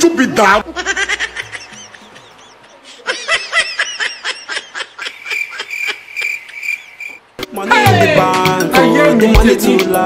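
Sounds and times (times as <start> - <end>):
rapid high-pitched laughter: 0.6 - 6.8.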